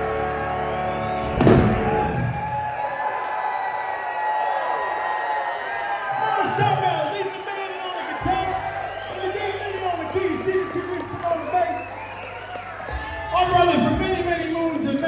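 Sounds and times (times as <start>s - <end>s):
audience cheering and whooping: 0.0s - 15.0s
full-band hit: 1.2s - 2.4s.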